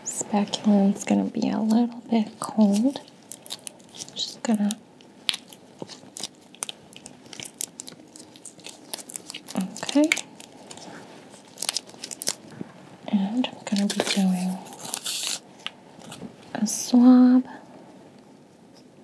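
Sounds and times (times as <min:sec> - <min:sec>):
rustling and crinkling drape: 0:00.4 - 0:16.6.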